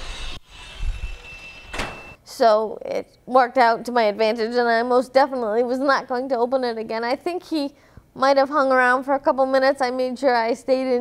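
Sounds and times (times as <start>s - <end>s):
door operator rumbling: 1.4s - 2.2s.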